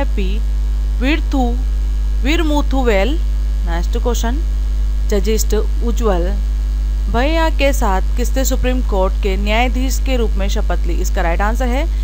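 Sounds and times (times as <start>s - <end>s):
woman speaking: 0.0s - 0.4s, 1.0s - 4.4s, 5.1s - 6.4s, 7.1s - 12.0s
electrical mains hum: 0.0s - 12.0s.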